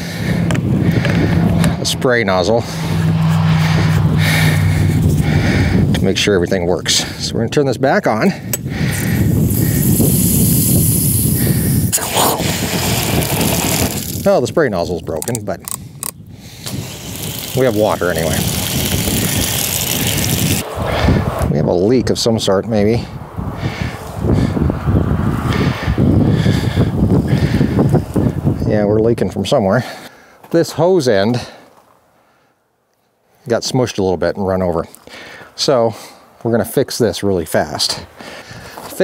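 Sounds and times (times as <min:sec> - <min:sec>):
steady low rumble: 0:00.0 - 0:06.6, 0:08.4 - 0:28.6
wind buffeting microphone: 0:00.0 - 0:07.6, 0:08.2 - 0:29.6
water hissing from hose nozzle: 0:09.3 - 0:14.3, 0:16.6 - 0:20.6
sharp click: 0:15.2 - 0:16.2.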